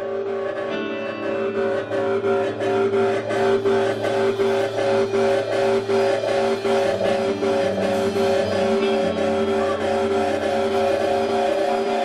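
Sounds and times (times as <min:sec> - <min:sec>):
electric guitar drone: 0:00.0 - 0:12.0.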